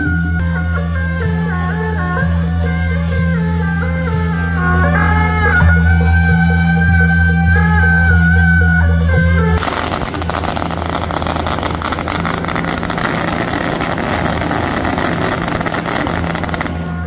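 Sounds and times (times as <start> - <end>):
low music drone: 0.0 - 17.0
firecrackers crackling: 9.6 - 17.0.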